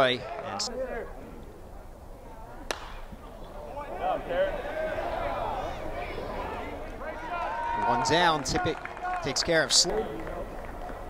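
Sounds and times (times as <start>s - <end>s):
stadium crowd noise: 0.0s - 11.0s
metal bat hitting ball: 2.7s - 3.1s.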